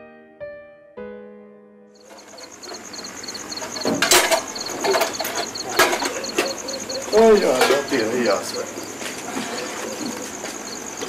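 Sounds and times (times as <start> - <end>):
crickets chirping: 2.0 - 11.0
sharp knocks and clatters: 2.0 - 11.0.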